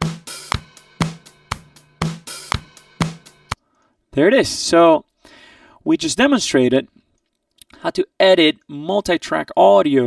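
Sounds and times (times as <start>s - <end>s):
drum kit playing steady beat: 0.0s - 3.6s.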